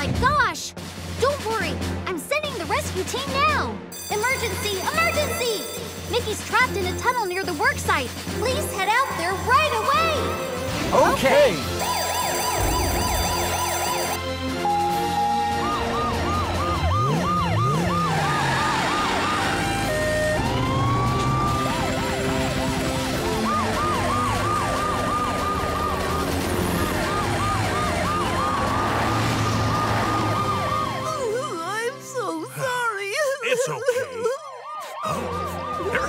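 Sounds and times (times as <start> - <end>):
background music: 0.0 - 36.0
emergency vehicle sirens: 4.0 - 36.0.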